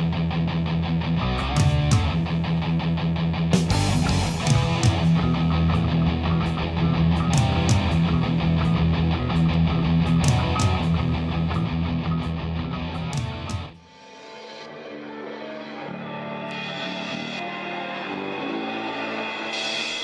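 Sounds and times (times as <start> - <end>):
heavy metal music: 0.0 - 20.0
live metal band: 0.0 - 20.0.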